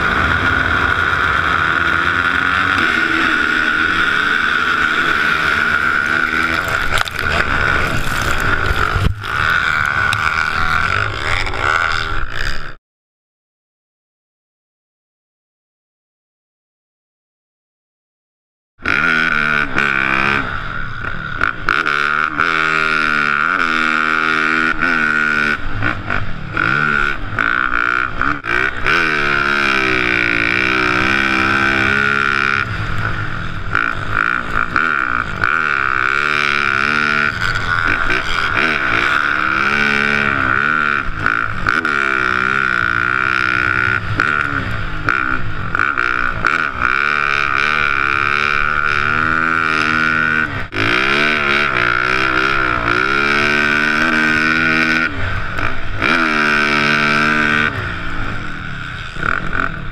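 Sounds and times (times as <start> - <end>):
dirt bike engine revving: 0.0 - 12.8, 18.8 - 59.9.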